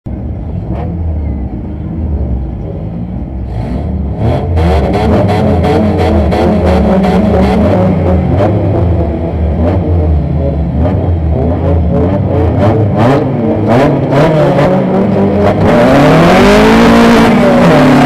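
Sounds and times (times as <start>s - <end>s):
car engine idling and revving: 0.0s - 18.0s.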